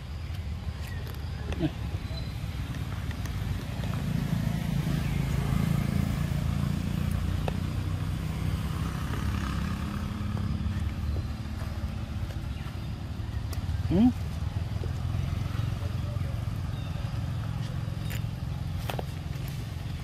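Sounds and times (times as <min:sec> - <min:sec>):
vehicle engine rumbling: 0:00.0 - 0:20.0.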